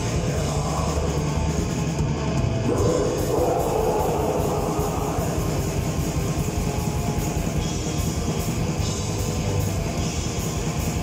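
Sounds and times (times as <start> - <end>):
metal band playing live: 0.0 - 11.0.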